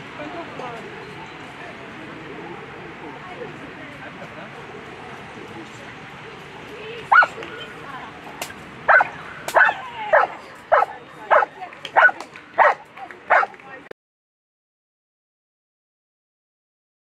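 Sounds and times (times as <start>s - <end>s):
dog barking: 7.1s - 7.4s, 8.9s - 13.5s.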